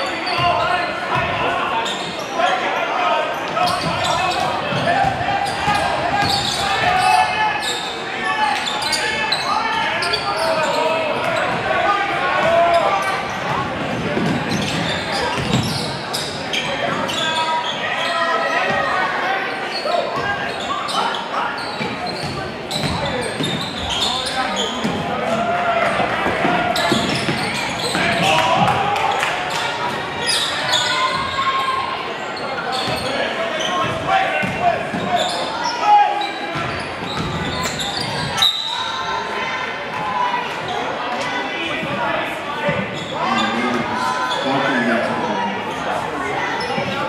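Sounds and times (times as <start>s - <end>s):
echoing hubbub of voices: 0.0s - 47.0s.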